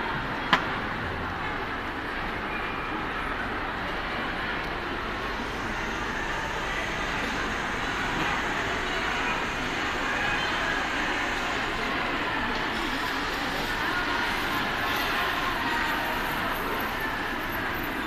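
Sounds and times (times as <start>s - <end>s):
large hall background noise: 0.0s - 18.0s.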